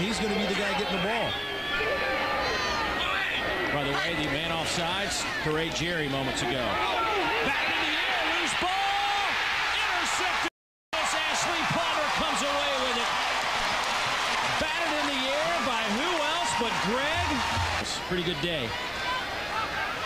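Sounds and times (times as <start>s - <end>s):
stadium crowd cheering: 0.0s - 20.0s.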